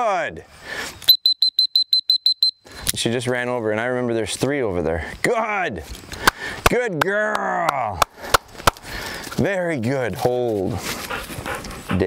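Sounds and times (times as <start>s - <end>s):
short high beeps: 1.1s - 2.6s.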